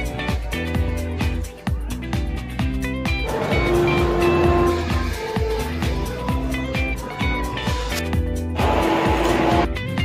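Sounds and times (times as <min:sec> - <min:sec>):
music with bass-drum beat: 0:00.0 - 0:10.0.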